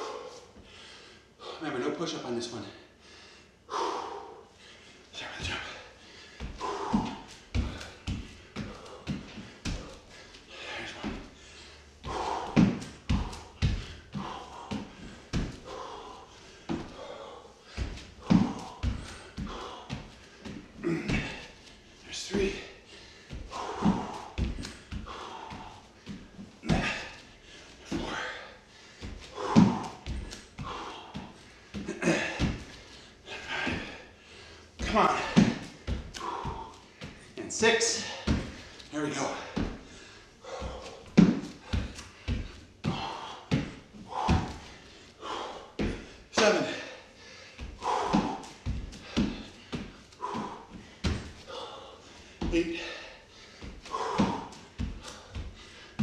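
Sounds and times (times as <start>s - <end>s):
hard breathing: 0.0s - 1.9s, 2.6s - 56.0s
hands and feet thudding on wooden floor: 5.2s - 11.4s, 12.0s - 46.9s, 47.5s - 56.0s.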